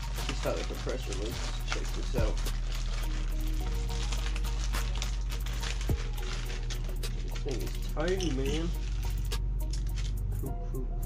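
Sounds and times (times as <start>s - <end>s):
plastic packaging crinkling: 0.0s - 10.4s
background music: 0.0s - 11.0s.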